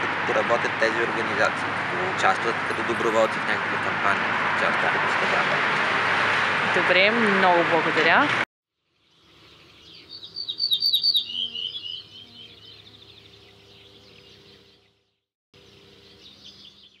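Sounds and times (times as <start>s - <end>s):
faint outdoor ambience: 0.0s - 15.0s, 15.6s - 17.0s
songbird chirping: 8.8s - 17.0s.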